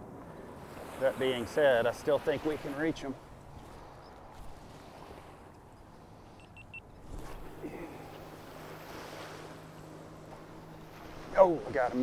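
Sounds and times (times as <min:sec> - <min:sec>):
outboard motorboat hum: 0:00.0 - 0:12.0.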